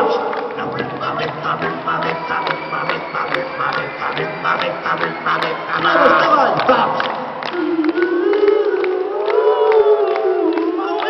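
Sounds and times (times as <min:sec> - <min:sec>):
person singing a long note: 0:00.0 - 0:10.9
crowd noise: 0:00.0 - 0:11.0
scattered claps: 0:00.2 - 0:11.0.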